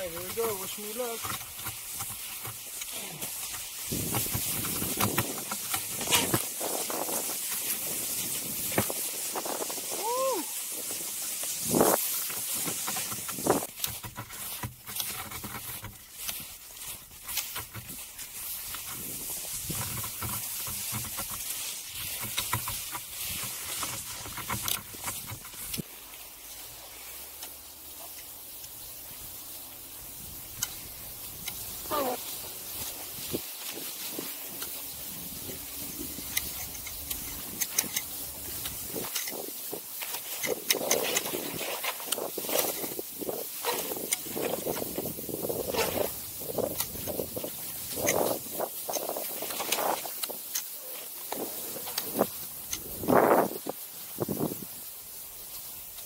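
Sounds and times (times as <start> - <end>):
skis sliding over snow: 0.0 - 56.0.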